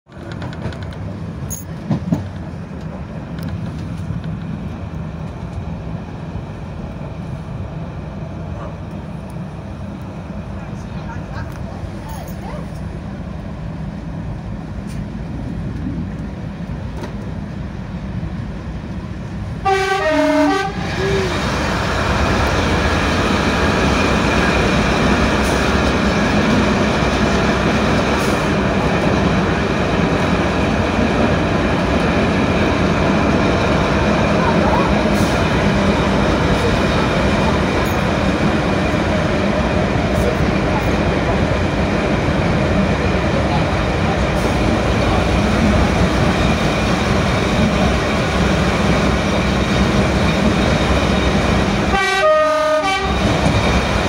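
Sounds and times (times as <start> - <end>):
train engine and wheels on rails: 0.0 - 54.0
two-tone train horn: 19.6 - 21.2, 51.9 - 53.4.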